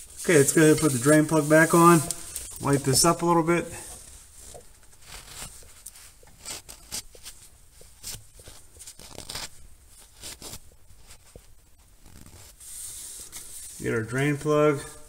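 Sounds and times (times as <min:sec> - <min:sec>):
rag rubbing on metal: 0:00.0 - 0:03.9.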